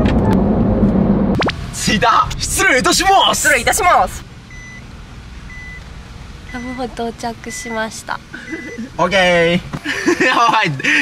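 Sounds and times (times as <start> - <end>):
low engine hum: 0.0 - 10.3
reverse warning beeps: 4.5 - 4.9, 5.5 - 5.8, 6.5 - 9.4.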